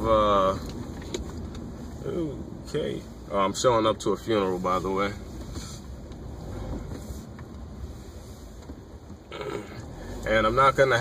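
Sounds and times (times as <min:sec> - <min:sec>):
low rumble inside car cabin: 0:00.0 - 0:11.0.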